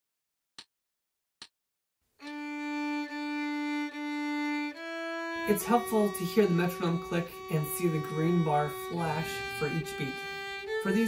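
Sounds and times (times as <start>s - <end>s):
violin bowed notes: 2.2s - 11.0s.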